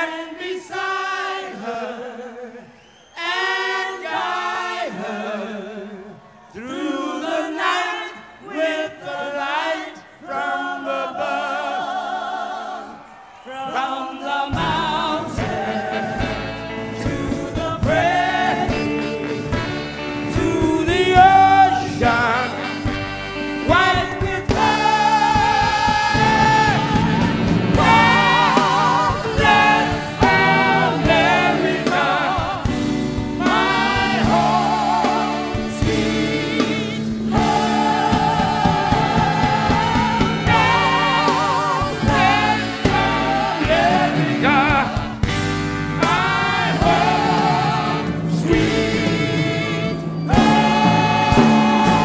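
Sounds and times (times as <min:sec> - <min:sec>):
group singing a cappella: 0:00.0 - 0:23.1, 0:23.7 - 0:52.0
soul band playing: 0:14.5 - 0:52.0.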